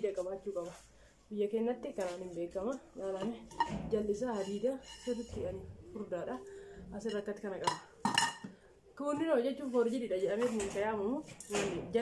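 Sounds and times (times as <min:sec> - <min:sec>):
woman talking: 0:00.0 - 0:07.9, 0:09.0 - 0:12.0.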